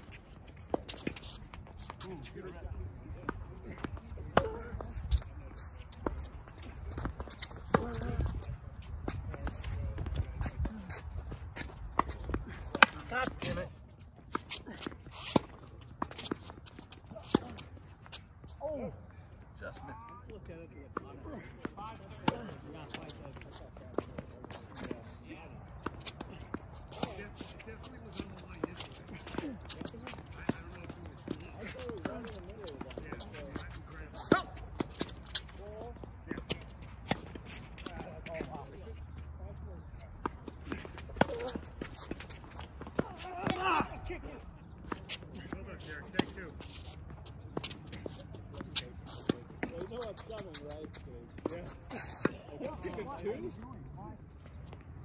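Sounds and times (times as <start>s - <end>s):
tennis ball struck by rackets: 12.0s - 13.6s.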